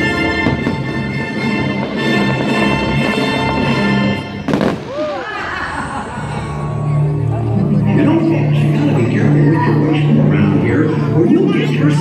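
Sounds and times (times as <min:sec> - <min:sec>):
orchestral music: 0:00.0 - 0:12.0
firework burst: 0:01.9 - 0:05.5.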